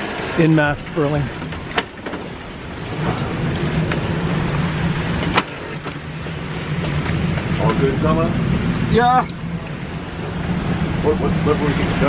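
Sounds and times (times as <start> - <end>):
rough sea: 0.0 - 12.0
wind: 0.0 - 12.0.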